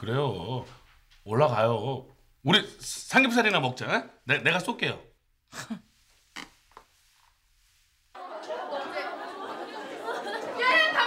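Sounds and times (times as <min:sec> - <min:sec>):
schoolgirls chattering: 0:08.2 - 0:11.0.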